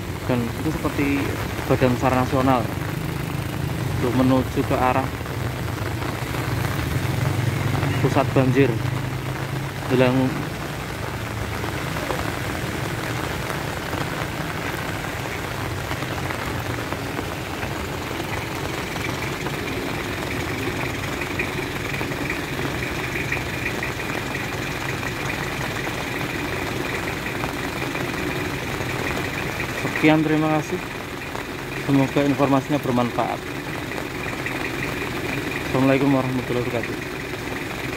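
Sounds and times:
rain hissing: 0.0s - 37.9s
vehicles passing on wet road: 0.0s - 37.9s.

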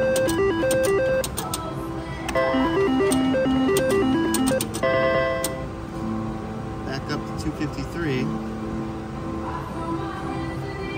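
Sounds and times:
slot machine spin melody: 0.0s - 1.5s, 2.3s - 5.6s
sharp clicks: 0.0s - 1.7s, 3.0s - 4.8s
held chord: 2.3s - 6.2s.

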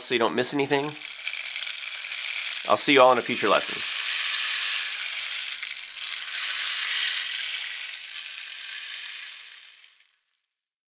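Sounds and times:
rain stick trickling: 0.0s - 10.5s.

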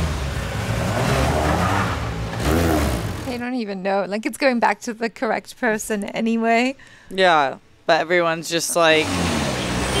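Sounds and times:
car engine running hard: 0.0s - 3.4s
road and tyre noise: 0.0s - 3.4s, 8.8s - 10.0s.

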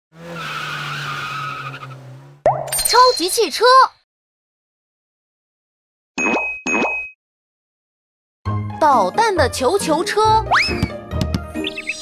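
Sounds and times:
cartoon tyres screeching: 0.1s - 2.4s.

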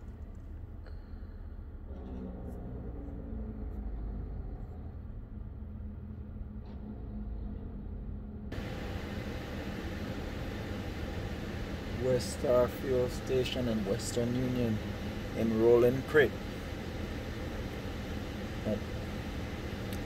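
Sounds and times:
car engine rumbling: 0.0s - 20.0s
steady hiss: 8.6s - 20.0s.

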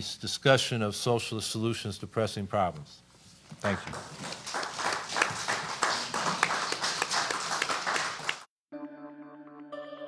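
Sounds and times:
audience applauding: 3.6s - 8.5s.

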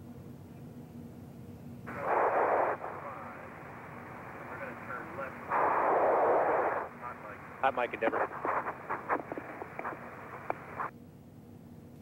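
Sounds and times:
radio static hiss: 1.9s - 10.9s.

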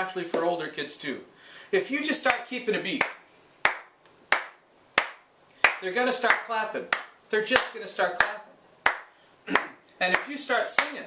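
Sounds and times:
man clapping hands: 3.0s - 11.0s.

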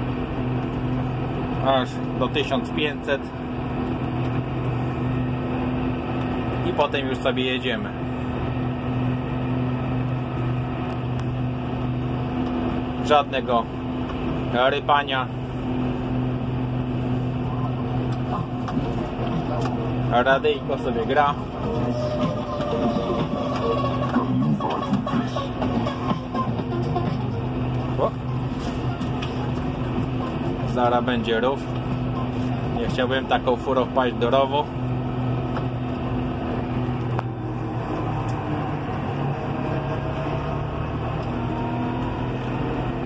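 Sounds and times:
tractor engine running in cab: 0.0s - 43.0s
radio music: 19.2s - 30.8s.

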